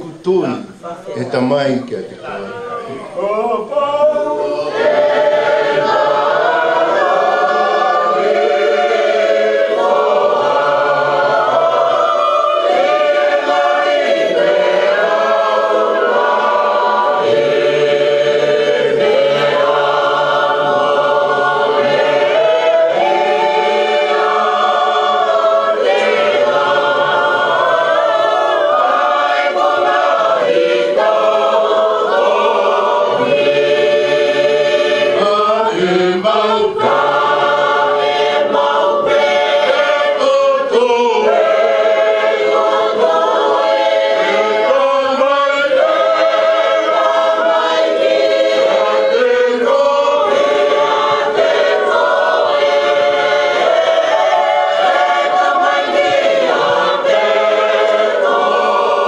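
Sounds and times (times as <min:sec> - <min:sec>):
congregation singing a hymn: 0:00.0 - 0:59.0.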